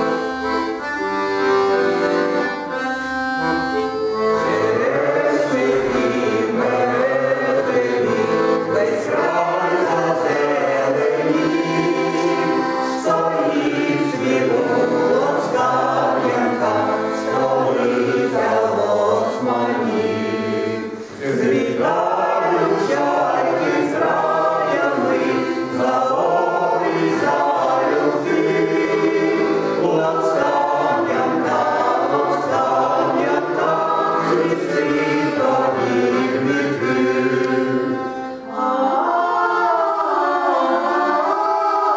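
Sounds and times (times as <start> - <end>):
accordion: 0.0 - 41.9
men and women singing in harmony: 4.1 - 41.9.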